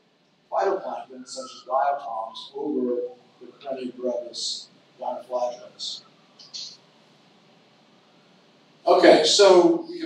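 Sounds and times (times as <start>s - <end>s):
man's voice: 0.5s - 6.0s, 8.9s - 10.0s.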